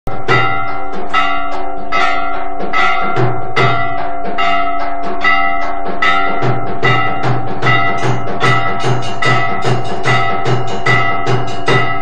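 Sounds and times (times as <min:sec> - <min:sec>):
deep drum beats: 0:00.0 - 0:12.0
metal bells ringing: 0:00.1 - 0:12.0.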